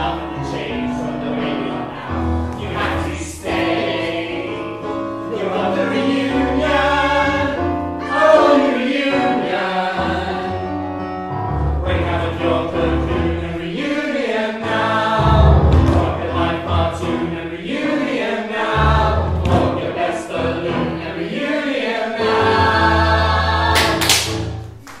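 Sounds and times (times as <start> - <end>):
ensemble singing in harmony: 0.0 - 24.1
instrumental accompaniment: 14.7 - 17.8.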